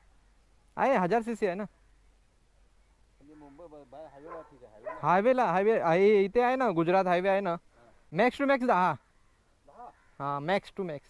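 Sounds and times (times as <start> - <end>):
conversation: 0.6 - 11.0.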